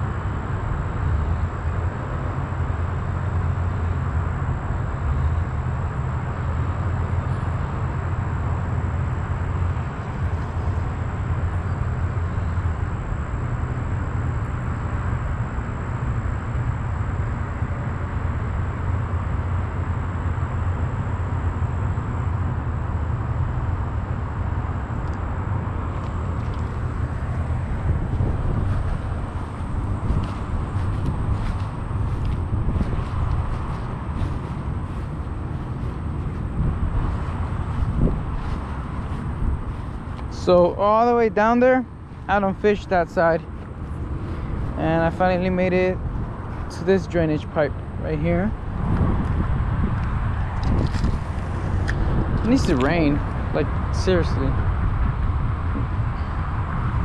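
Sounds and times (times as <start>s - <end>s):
low outdoor rumble: 0.0s - 57.0s.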